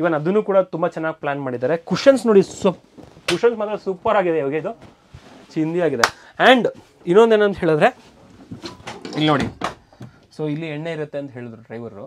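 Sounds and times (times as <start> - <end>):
man speaking: 0.0 - 4.8, 5.5 - 8.0.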